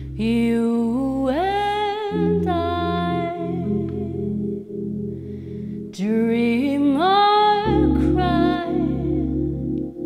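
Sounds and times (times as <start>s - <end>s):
woman singing wordless notes: 0.0s - 4.7s, 5.8s - 10.0s
keyboard chords: 0.0s - 10.0s.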